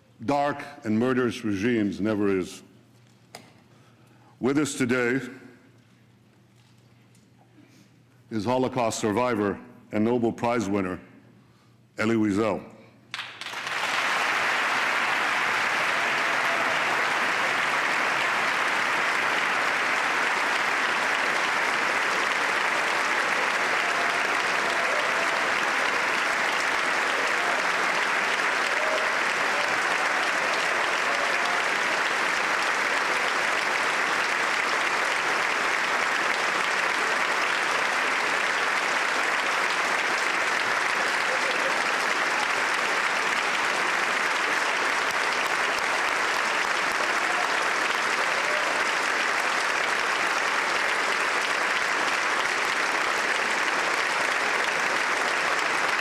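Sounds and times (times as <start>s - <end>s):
large audience applauding: 13.1s - 56.0s.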